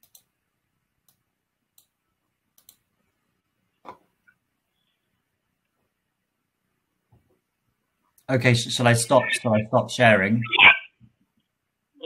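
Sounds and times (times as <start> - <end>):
faint sharp clicks: 0.0 - 0.3, 2.6 - 2.8.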